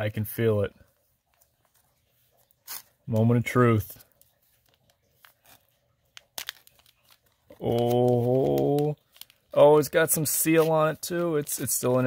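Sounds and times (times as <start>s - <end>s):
plastic bag tearing: 2.6s - 3.0s, 4.6s - 12.0s.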